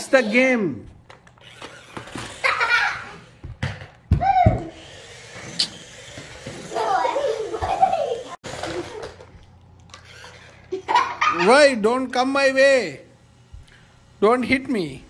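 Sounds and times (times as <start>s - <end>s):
children exclaiming and giggling: 2.3s - 3.4s, 4.1s - 4.8s, 6.5s - 9.4s
child's high cry: 4.1s - 4.8s.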